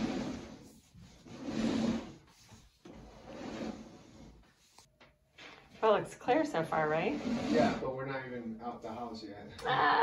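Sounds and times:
cable scraping in pipe: 0:00.0 - 0:04.9, 0:06.3 - 0:08.3.

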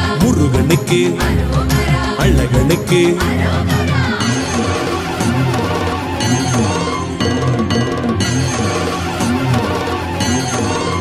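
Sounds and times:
melodic instrumental line: 0:00.0 - 0:10.5.

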